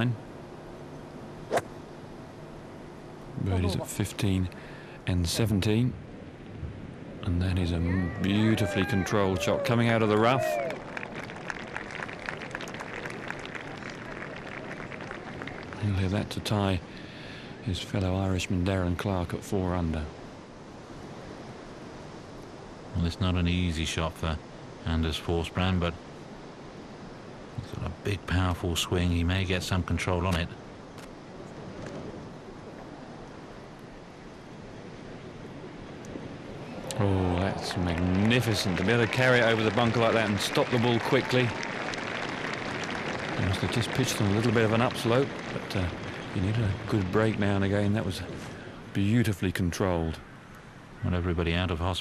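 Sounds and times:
wind: 0.0s - 52.0s.

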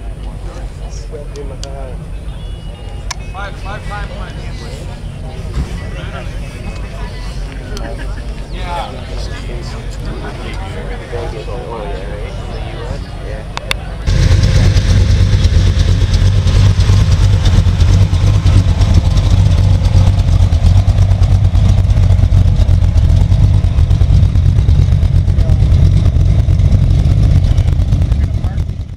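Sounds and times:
car engine rumble: 0.0s - 28.9s.

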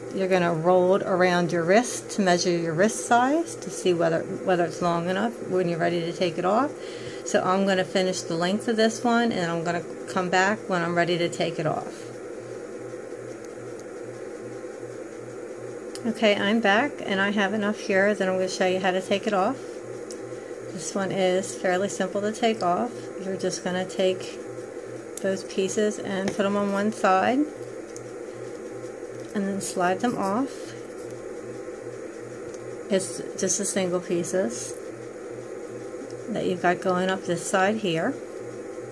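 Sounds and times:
pulsing low hum: 0.0s - 38.9s.

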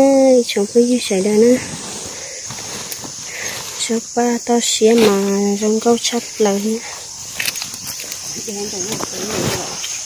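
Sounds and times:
woman talking: 0.0s - 1.7s, 3.8s - 7.0s, 8.4s - 9.5s
high-pitched insect buzz: 0.0s - 10.0s.

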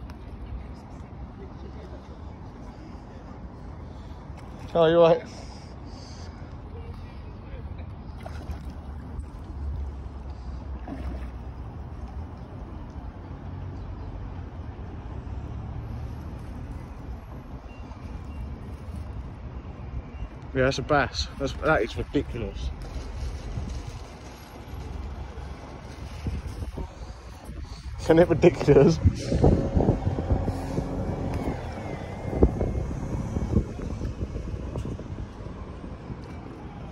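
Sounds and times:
low outdoor rumble: 20.5s - 36.9s.

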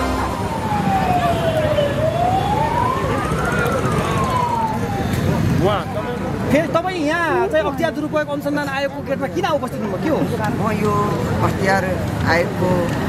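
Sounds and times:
vehicle siren wailing: 0.0s - 6.8s
street crowd hubbub: 0.0s - 13.0s.

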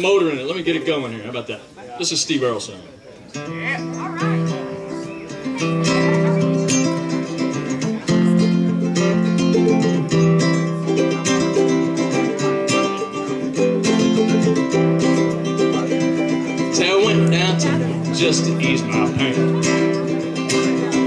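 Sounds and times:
acoustic string band playing country: 0.0s - 21.0s.

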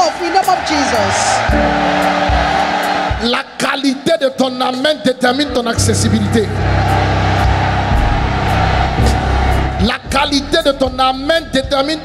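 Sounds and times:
crowd calling out and cheering: 0.0s - 4.0s, 5.8s - 12.0s
keyboard chords: 1.4s - 3.2s, 5.3s - 11.2s
deep bass note: 7.5s - 10.4s.

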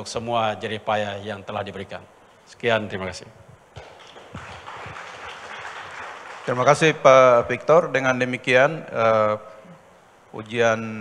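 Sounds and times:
audience applause: 3.8s - 7.0s.

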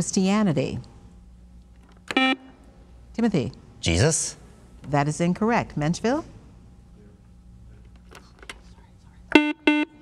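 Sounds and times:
quiz show buzzer beeps: 2.1s - 2.5s, 9.3s - 10.0s.

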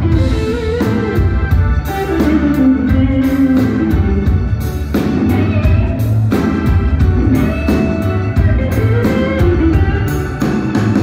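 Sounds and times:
bass guitar: 0.0s - 11.0s
drum kit: 0.0s - 11.0s
electric guitar: 0.0s - 11.0s
organ: 0.0s - 11.0s.

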